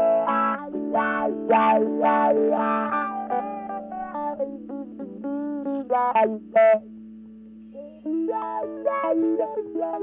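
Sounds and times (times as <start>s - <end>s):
electric guitar with wah pedal: 0.0s - 10.0s.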